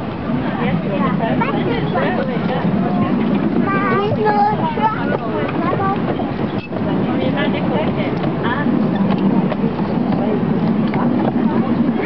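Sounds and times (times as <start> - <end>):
miniature train rumbling on track: 0.0 - 12.0
voices: 0.0 - 12.0.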